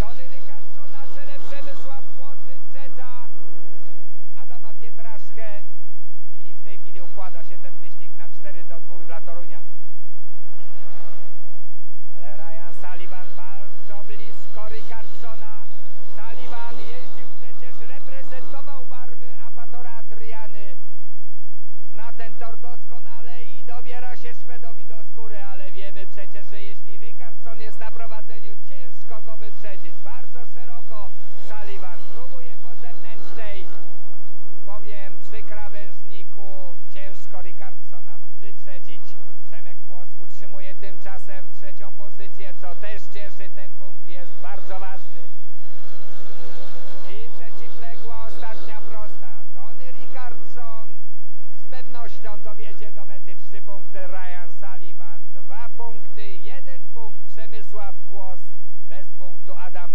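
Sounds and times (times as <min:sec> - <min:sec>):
motorcycles racing: 0:00.0 - 0:59.9.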